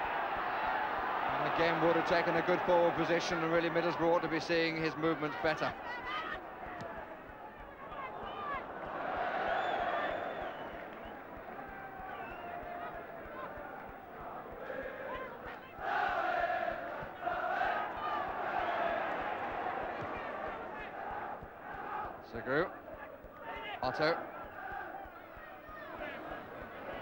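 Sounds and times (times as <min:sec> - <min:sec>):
football crowd chanting: 0:00.0 - 0:27.0.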